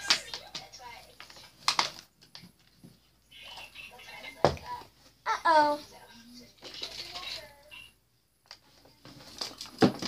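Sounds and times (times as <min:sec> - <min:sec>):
plastic bottles and cups handled: 0:08.5 - 0:10.0.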